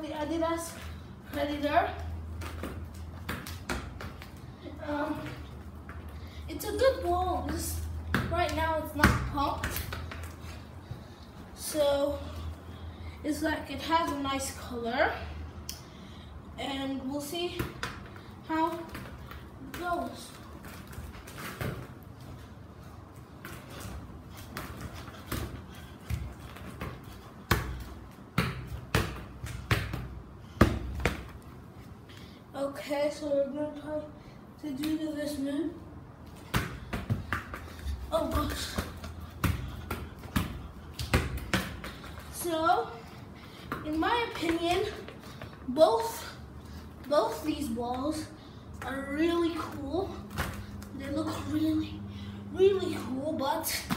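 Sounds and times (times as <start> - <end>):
football thuds on tiled floor: 0.7 - 4.4, 7.0 - 11.0, 17.5 - 22.0, 23.3 - 31.4, 36.3 - 46.3, 50.3 - 50.8.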